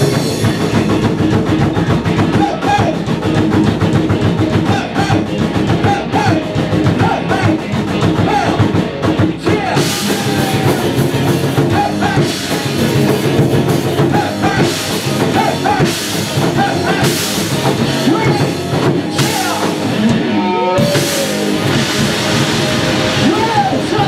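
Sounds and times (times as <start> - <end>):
distorted electric guitar: 0.0 - 24.0
drum kit: 0.0 - 24.0
person rapping into microphone: 4.6 - 8.6, 9.4 - 10.6.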